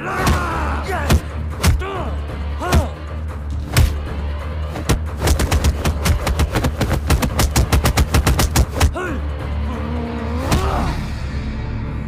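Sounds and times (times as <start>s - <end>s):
low music drone: 0.0s - 12.0s
rapid punch impacts: 4.7s - 9.0s.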